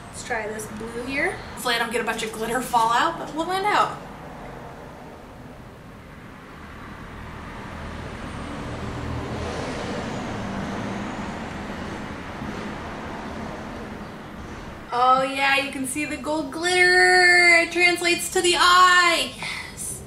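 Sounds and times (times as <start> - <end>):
vehicle passing by: 0.0 - 14.9.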